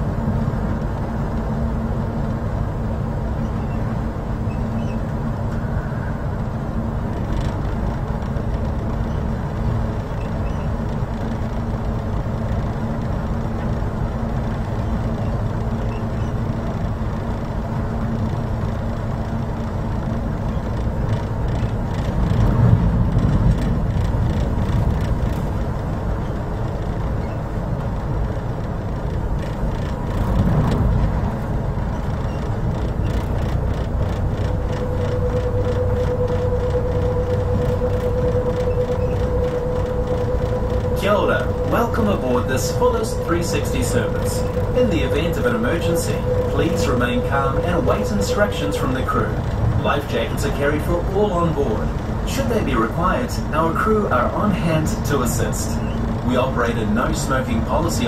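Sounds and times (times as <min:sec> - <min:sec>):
ferry engines rumbling: 0:00.0 - 0:58.0
steady tone: 0:28.8 - 0:58.0.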